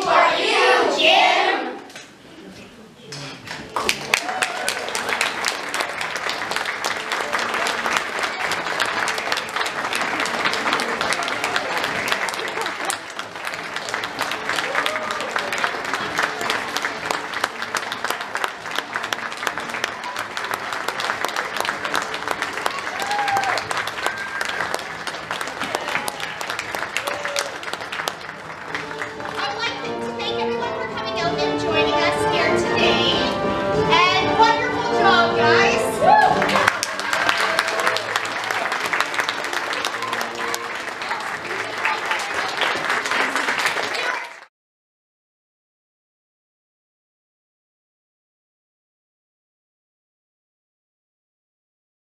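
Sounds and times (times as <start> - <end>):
audience applauding: 3.1 - 29.4, 36.0 - 44.5
crowd cheering and whooping: 4.0 - 5.2, 14.6 - 15.5, 22.6 - 25.0, 25.6 - 27.7, 36.0 - 38.7.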